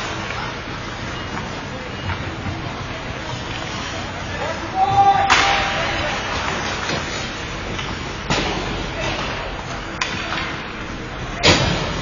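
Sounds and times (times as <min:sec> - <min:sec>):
hockey stick striking puck: 0:05.2 - 0:10.7.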